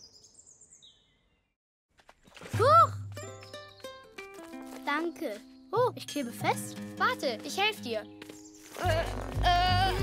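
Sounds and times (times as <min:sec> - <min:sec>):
light background music: 0:02.6 - 0:10.0.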